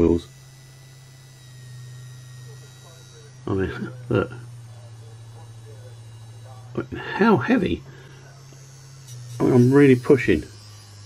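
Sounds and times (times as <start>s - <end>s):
faint high whine: 0.0s - 11.0s
small electric motor humming: 0.0s - 11.0s.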